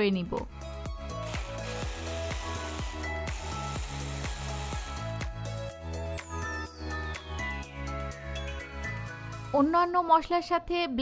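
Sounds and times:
background music with beat: 0.5s - 9.5s
electric chopper whirring: 1.1s - 5.6s.

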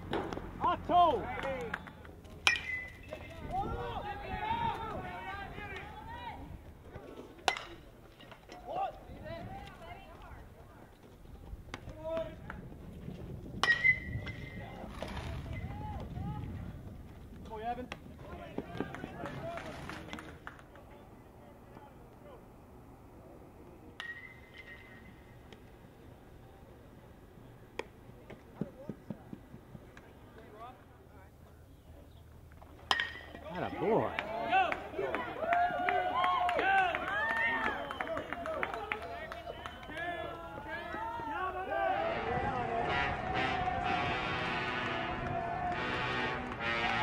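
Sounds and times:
ball cracking on metal bat: 2.4s - 3.0s, 7.5s - 7.8s, 13.6s - 14.5s, 24.0s - 25.6s, 32.9s - 33.4s
players and spectators calling out: 33.4s - 47.0s.

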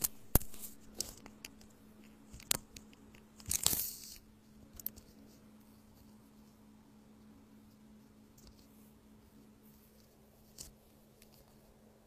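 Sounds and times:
steady low hum: 0.0s - 12.0s
rustling tearing noise: 3.4s - 5.3s.

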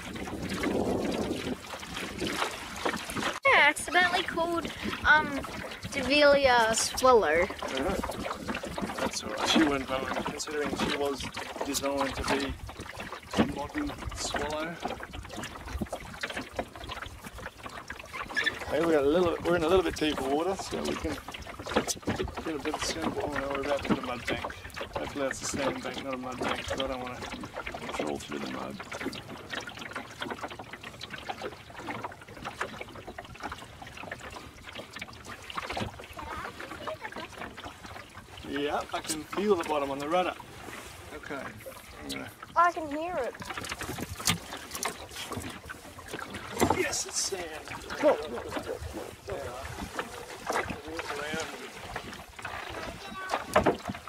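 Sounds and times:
water lapping against wooden hull: 0.0s - 54.0s.

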